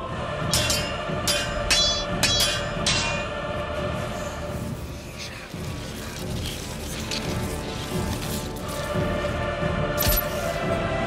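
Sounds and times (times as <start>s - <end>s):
music: 0.0s - 11.0s
swords clashing: 0.5s - 3.4s.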